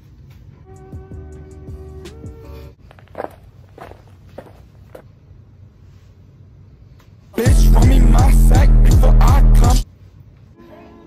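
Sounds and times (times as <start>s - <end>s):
background music: 0.6s - 2.8s, 7.4s - 9.8s.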